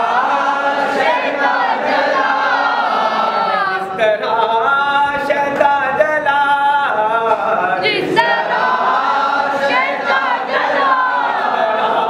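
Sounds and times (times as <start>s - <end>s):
lead reciter singing: 0.0s - 12.0s
men singing in chorus: 0.0s - 12.0s.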